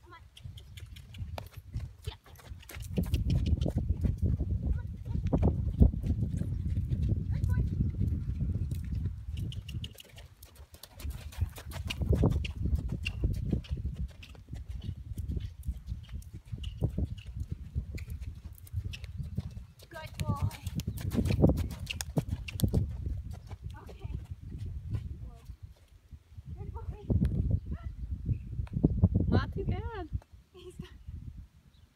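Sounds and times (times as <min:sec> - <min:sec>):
horse hoofbeats on sand: 0:00.6 - 0:25.9.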